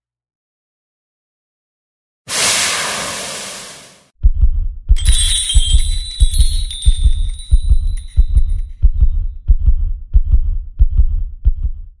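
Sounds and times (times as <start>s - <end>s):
deep heartbeat-like double thumps: 4.2s - 12.0s.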